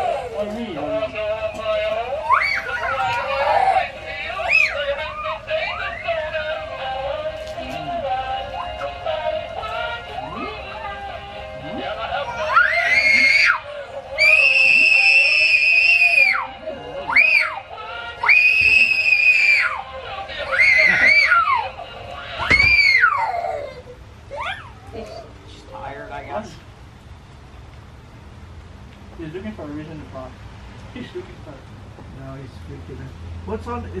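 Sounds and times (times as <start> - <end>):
high-pitched gliding shrieks: 2.2 - 6.3, 14.2 - 17.6
music-like tones: 3.8 - 12.5.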